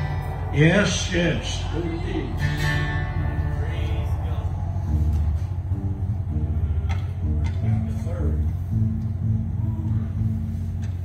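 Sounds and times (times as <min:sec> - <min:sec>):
acoustic guitar plucked notes: 0:00.0 - 0:11.0
upright bass plucked notes: 0:00.0 - 0:11.0.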